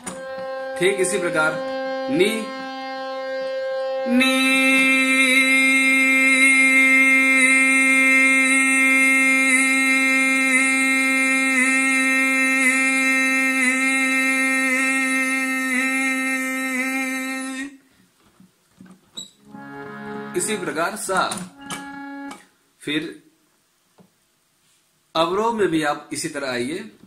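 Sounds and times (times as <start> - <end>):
harmonium holding a note: 0.0 - 16.1, 19.4 - 22.5
man singing one note: 4.0 - 17.8.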